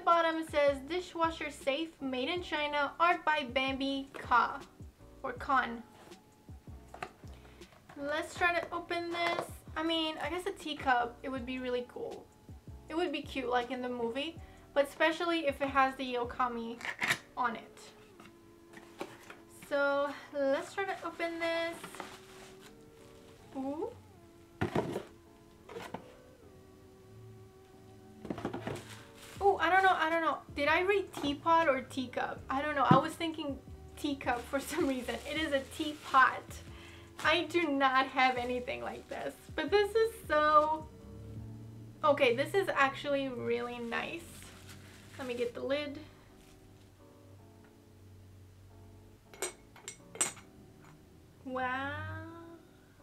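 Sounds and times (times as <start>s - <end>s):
soft background music: 0.0s - 53.0s
bubble wrap crinkling: 20.6s - 24.0s, 28.2s - 30.2s, 34.0s - 40.2s, 42.9s - 46.8s
teapot lid clinking: 49.3s - 50.5s.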